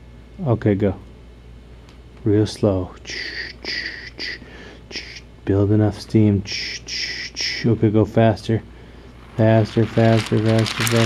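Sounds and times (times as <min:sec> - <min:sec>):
mouth hisses imitating steam engine: 0:03.1 - 0:05.2.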